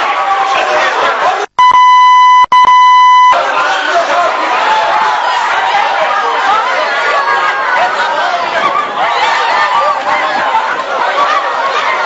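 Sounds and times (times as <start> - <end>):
crowd voices: 0.0 - 1.6, 3.1 - 12.0
censor bleep tone: 1.6 - 3.4.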